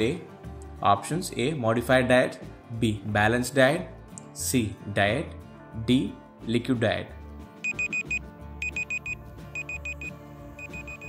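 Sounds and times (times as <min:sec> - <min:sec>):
soft background music: 0:00.0 - 0:11.0
high alarm beeps: 0:07.6 - 0:11.0.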